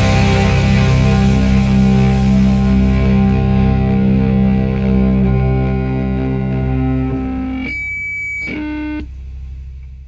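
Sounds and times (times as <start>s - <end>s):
low drone: 0.0s - 7.7s
rock guitar chords ringing: 0.0s - 9.1s.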